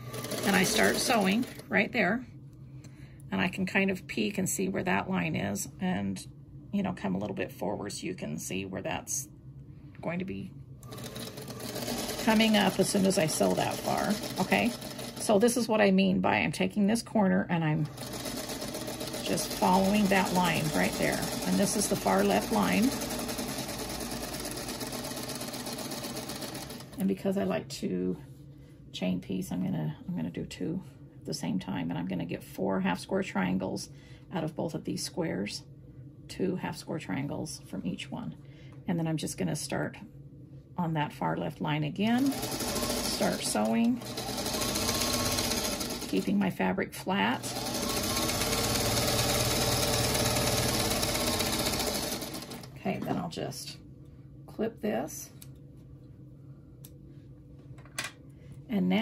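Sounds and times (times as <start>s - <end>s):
sewing machine running: 0.0s - 1.7s, 10.8s - 15.6s, 17.8s - 27.0s, 42.1s - 46.4s, 47.4s - 52.8s.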